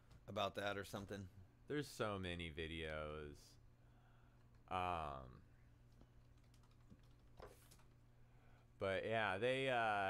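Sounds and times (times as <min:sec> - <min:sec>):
typing on keyboard: 0:06.2 - 0:07.9.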